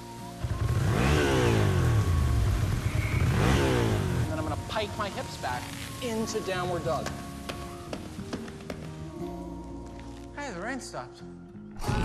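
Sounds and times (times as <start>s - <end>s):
motorcycle engine rumble: 0.4s - 6.2s.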